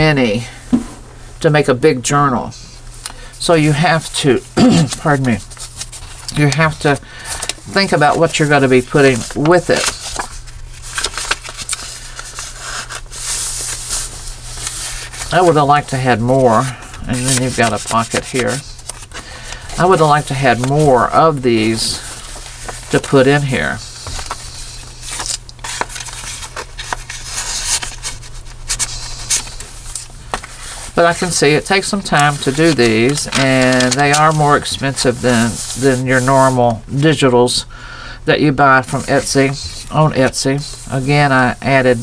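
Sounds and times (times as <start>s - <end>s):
steady low hum: 0.0s - 42.0s
paper crinkles and ticks: 5.0s - 36.2s
hands rubbing over paper: 5.0s - 36.8s.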